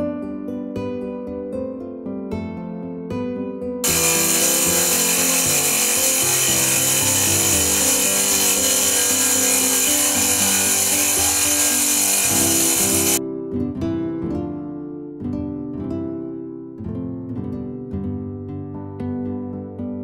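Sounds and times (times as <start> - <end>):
soft guitar music: 0.0 - 20.0
tile saw grinding stone: 3.8 - 13.2.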